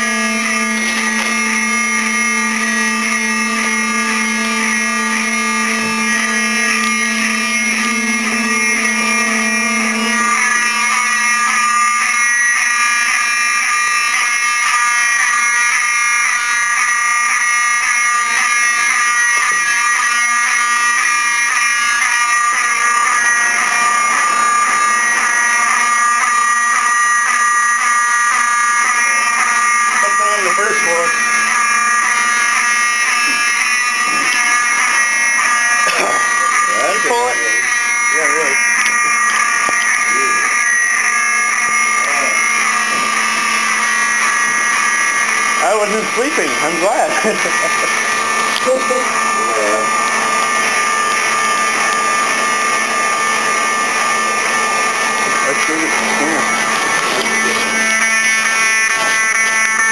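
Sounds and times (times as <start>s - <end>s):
fire alarm pulsing tone: 0.0s - 59.9s.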